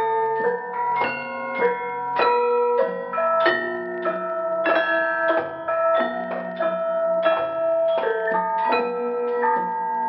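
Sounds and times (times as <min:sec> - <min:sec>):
gamelan ensemble playing: 0:00.0 - 0:10.0.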